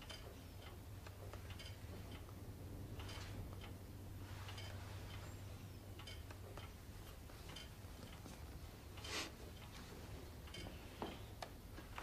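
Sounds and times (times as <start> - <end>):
clock ticking: 0.0 - 12.0.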